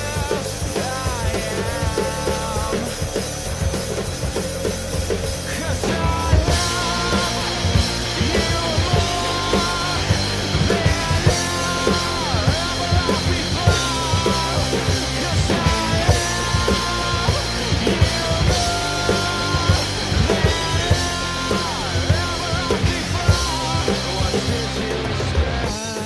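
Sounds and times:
acoustic drum kit: 0:00.0 - 0:26.0
rock backing track with singing: 0:00.0 - 0:26.0.

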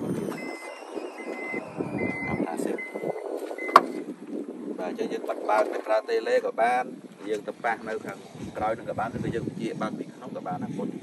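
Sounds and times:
tailgate warning beeps: 0:00.0 - 0:04.1
tailgate latching clunk: 0:03.4 - 0:04.1.

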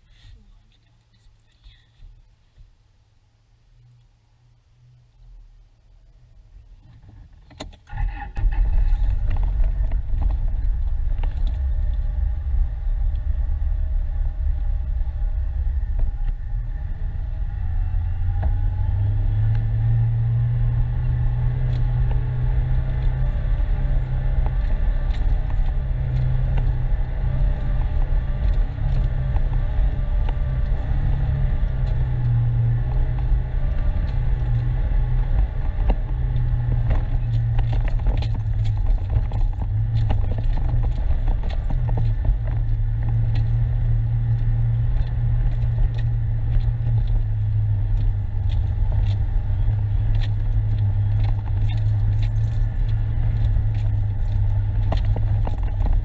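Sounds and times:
vehicle engine running: 0:07.9 - 0:56.0
tyres on gravel: 0:21.6 - 0:56.0
light clicks and rattles: 0:35.6 - 0:43.6, 0:44.3 - 0:56.0.

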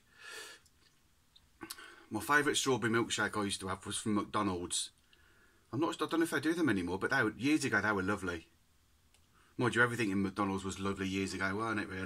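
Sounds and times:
man breathing in: 0:00.0 - 0:00.7, 0:01.6 - 0:02.1, 0:05.1 - 0:05.7
faint mouth clicks: 0:00.6 - 0:01.9.

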